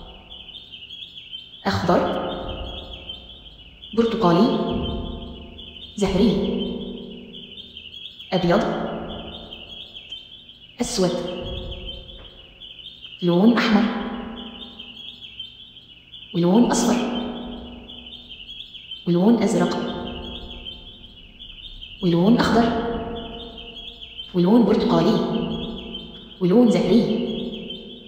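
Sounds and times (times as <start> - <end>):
small birds chirping: 0.0 - 28.0
spoken word with echo: 1.6 - 2.7, 6.0 - 6.9, 16.4 - 17.5, 24.3 - 25.6, 26.3 - 27.5
person speaking: 6.0 - 6.8, 16.4 - 17.4, 19.1 - 20.2, 24.3 - 25.6, 26.3 - 27.4.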